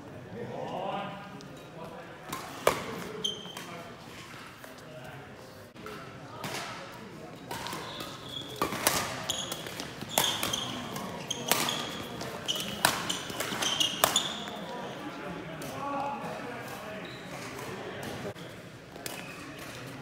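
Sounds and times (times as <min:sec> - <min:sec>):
shoe squeaks on court floor: 0:03.1 - 0:03.8, 0:07.4 - 0:15.0, 0:16.9 - 0:17.6
racket striking shuttlecock: 0:08.6 - 0:14.4.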